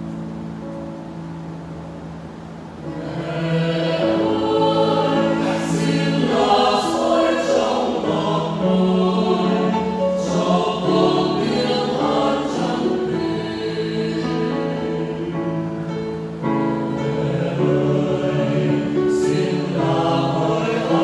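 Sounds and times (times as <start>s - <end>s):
mixed choir singing a hymn: 2.8s - 21.0s.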